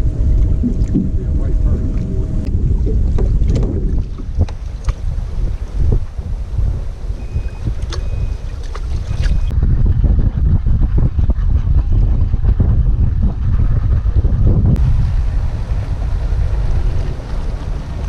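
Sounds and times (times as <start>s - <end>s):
steady hum: 0.0s - 9.9s, 12.6s - 18.0s
wind buffeting microphone: 0.0s - 18.0s
short high beeps: 7.2s - 8.4s.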